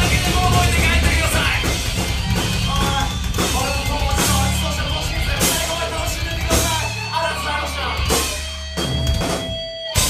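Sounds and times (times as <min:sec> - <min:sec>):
rock band accented hits: 0:00.0 - 0:10.0.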